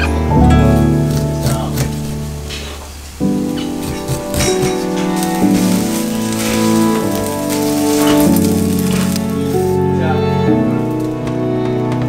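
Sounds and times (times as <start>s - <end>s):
instrumental music: 0.0s - 12.0s
rice sizzling in a frying pan: 0.9s - 9.8s.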